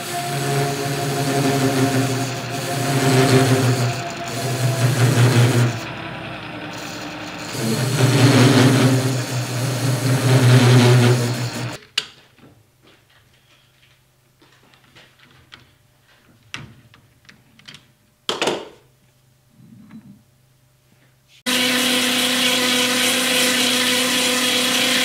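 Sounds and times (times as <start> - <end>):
metal lathe cutting: 0.0 - 11.8, 21.5 - 25.0.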